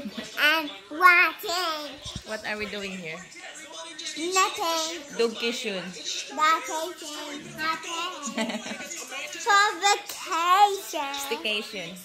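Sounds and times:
child singing: 4.2 - 5.0, 6.3 - 8.4, 9.4 - 11.4.

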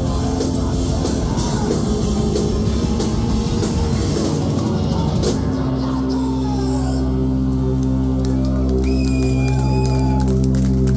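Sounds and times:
electric guitars droning chord: 0.0 - 10.9.

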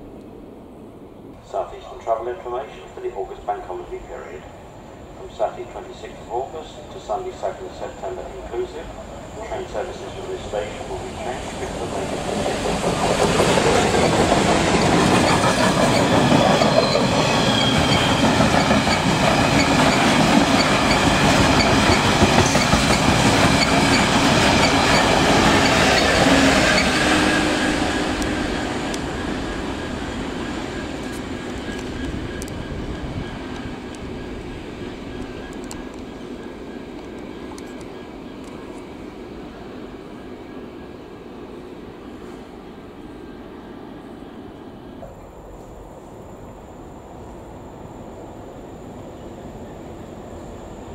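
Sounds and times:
diesel freight train passing: 0.0 - 50.9.

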